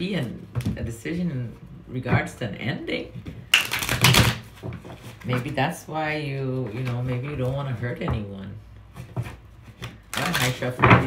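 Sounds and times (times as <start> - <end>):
cards being shuffled: 3.4 - 5.7, 9.2 - 11.0.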